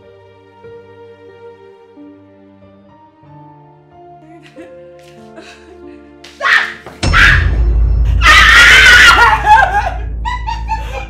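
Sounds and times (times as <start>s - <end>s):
person screaming shrilly: 6.4s - 7.4s, 8.2s - 10.0s
wavering falling cries: 8.2s - 10.9s.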